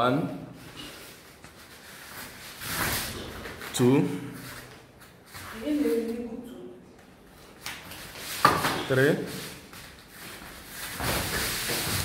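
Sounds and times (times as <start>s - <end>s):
rustling and scuffing on mats: 0.6s - 6.3s, 7.3s - 12.0s.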